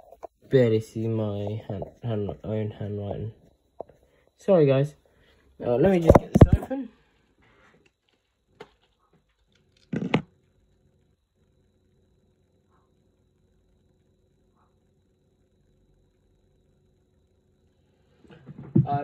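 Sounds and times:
clattering knock: 0:18.3 - 0:19.0.

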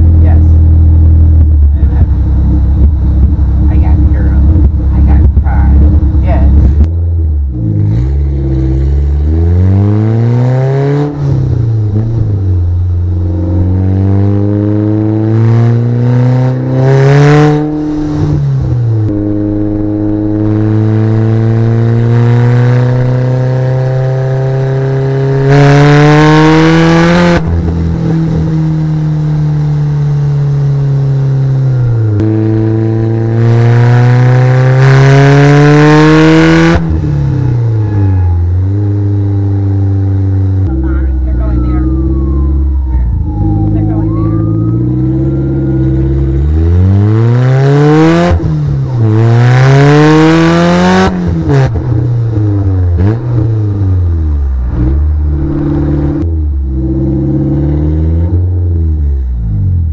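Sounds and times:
car engine accelerating through gears: 0:00.0 - 0:59.9.

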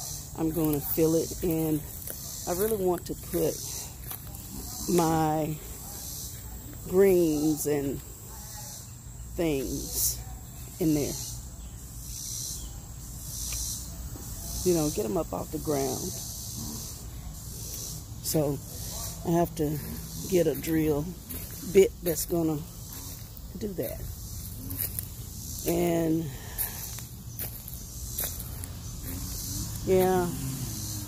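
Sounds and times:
woman speaking: 0:00.3 - 0:05.7, 0:06.8 - 0:08.1, 0:09.4 - 0:10.2, 0:10.8 - 0:11.2, 0:14.6 - 0:16.2, 0:18.2 - 0:22.7, 0:23.5 - 0:24.1, 0:25.6 - 0:26.8, 0:29.8 - 0:30.8
high-pitched insect drone: 0:10.8 - 0:31.0.

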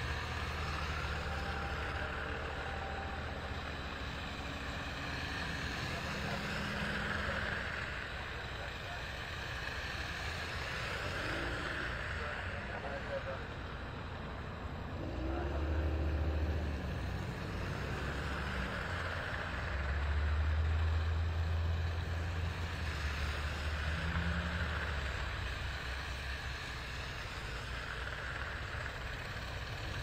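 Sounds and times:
pickup truck engine rumble: 0:00.0 - 0:30.0
tyres hissing on wet road: 0:00.0 - 0:30.0.

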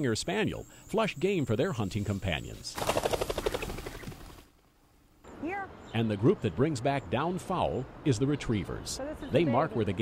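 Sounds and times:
bird wingbeats whirring: 0:02.8 - 0:04.6.

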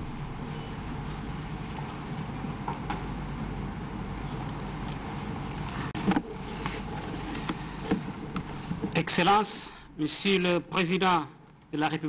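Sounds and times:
hall room noise: 0:00.0 - 0:12.0.

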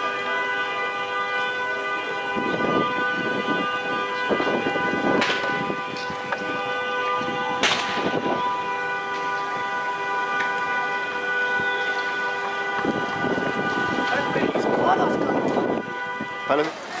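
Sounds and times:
alarm tone: 0:00.0 - 0:16.6
fire crackling: 0:03.7 - 0:16.5
sharp pops: 0:07.6 - 0:08.1.

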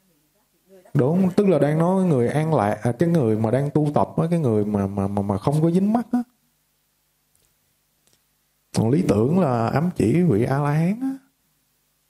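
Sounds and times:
man speaking: 0:00.9 - 0:06.4, 0:08.7 - 0:11.3.

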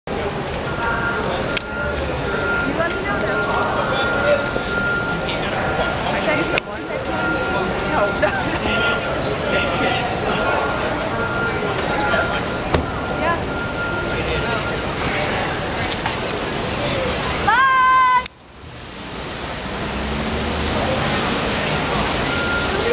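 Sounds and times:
indistinct talking: 0:00.1 - 0:18.4
city traffic: 0:00.1 - 0:22.9
crowd noise: 0:00.1 - 0:22.9
street noise: 0:00.1 - 0:22.9.

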